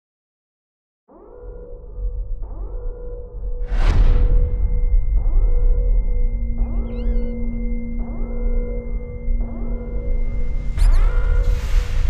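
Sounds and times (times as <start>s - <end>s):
low rumble: 3.4s - 12.0s.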